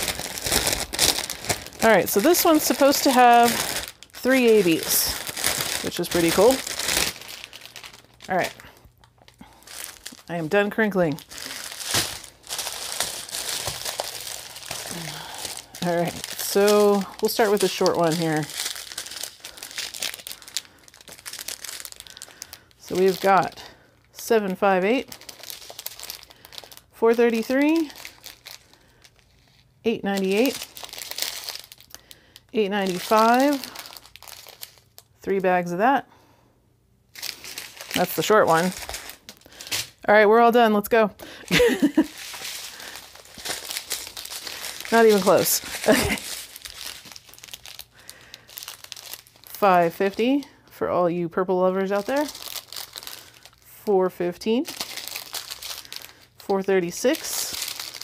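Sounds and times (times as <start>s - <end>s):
plastic bags crinkling: 0.0s - 35.7s, 37.1s - 50.8s, 51.6s - 53.7s, 54.5s - 58.0s.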